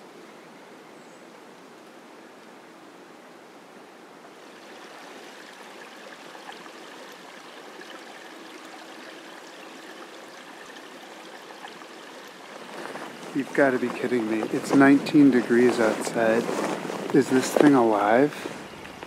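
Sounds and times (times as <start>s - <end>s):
creek running over rocks: 4.3s - 19.0s
water trickling and babbling: 4.3s - 19.0s.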